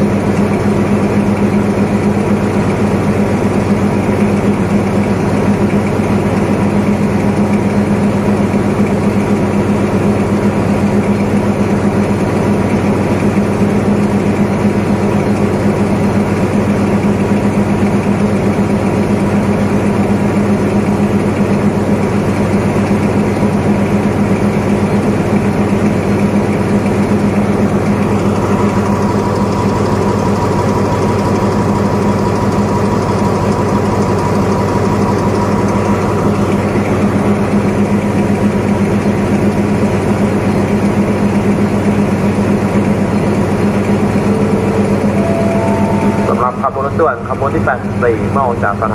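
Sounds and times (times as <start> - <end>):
locomotive engine idling drone: 0.0 - 48.9
higher steady whine: 42.9 - 48.9.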